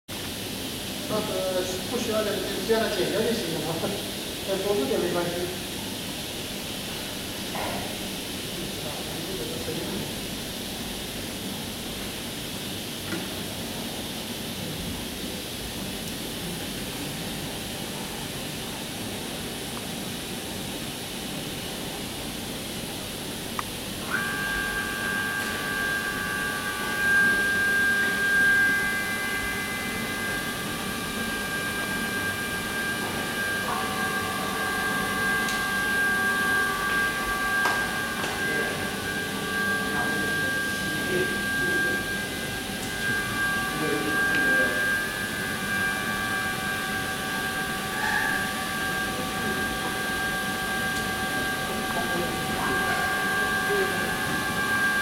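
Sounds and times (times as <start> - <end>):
high-pitched electronic whine: 24.0 - 55.0
lower electronic tone: 24.0 - 55.0.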